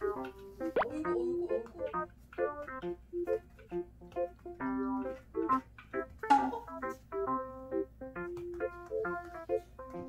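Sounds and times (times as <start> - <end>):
playful keyboard music: 0.0 - 10.0.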